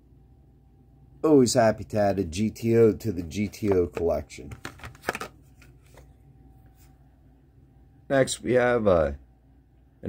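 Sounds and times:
low room hum: 0.0s - 10.0s
cardboard and plastic rustling: 3.4s - 6.1s.

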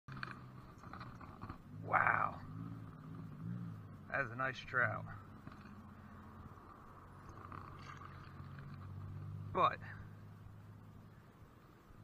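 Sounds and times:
low steady hum: 0.1s - 12.0s.

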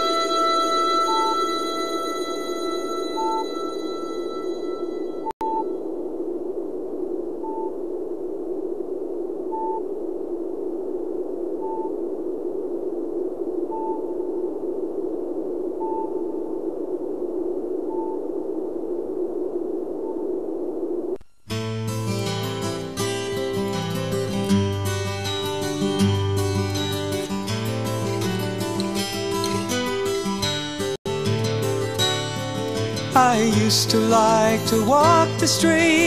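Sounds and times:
held musical chord: 0.0s - 4.9s
steady low hiss: 5.6s - 30.3s.

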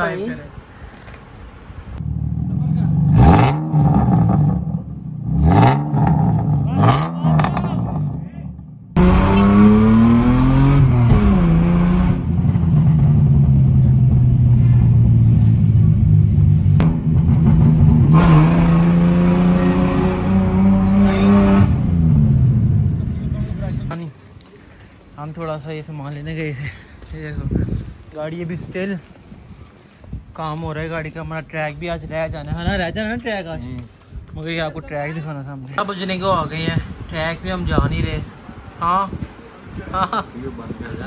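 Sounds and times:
rotary engine revving: 9.0s - 15.6s, 16.7s - 23.0s.

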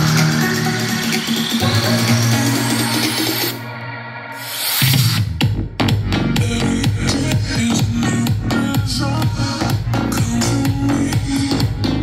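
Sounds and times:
strong bass beat: 0.0s - 3.6s, 4.8s - 12.0s
electronic dance music: 0.0s - 12.0s.

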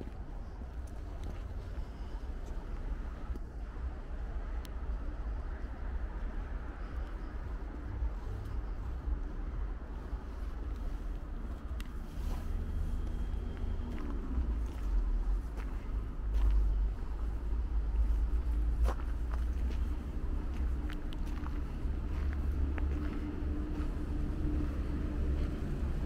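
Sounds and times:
footsteps on snow: 0.0s - 3.3s, 9.8s - 26.0s
road traffic rumble: 0.0s - 26.0s.

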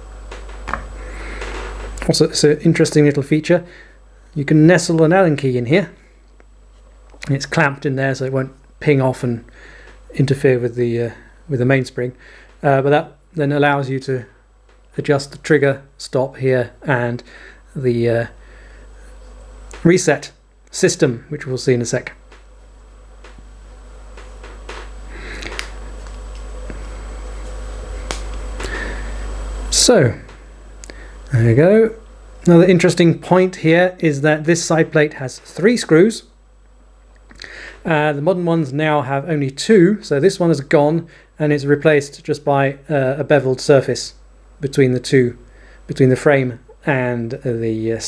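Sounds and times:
low steady hum: 0.0s - 48.0s.

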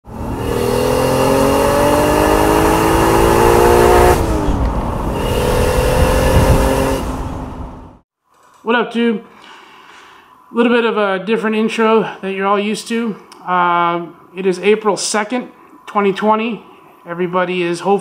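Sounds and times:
car engine accelerating: 0.0s - 8.0s.

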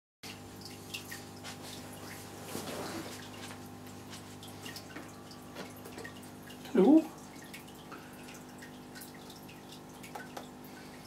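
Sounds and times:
aquarium water trickling: 0.2s - 11.0s
filter pump hum: 0.2s - 11.0s.

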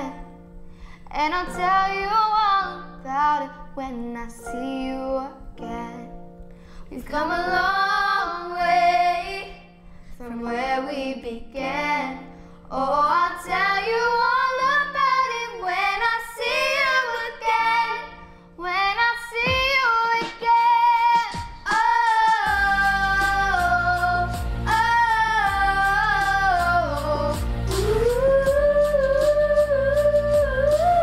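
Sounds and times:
girls singing in harmony: 7.0s - 31.0s
low steady accompaniment: 22.5s - 31.0s.

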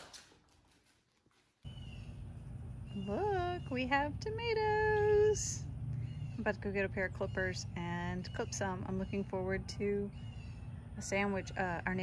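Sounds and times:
low outdoor rumble: 1.6s - 12.0s.

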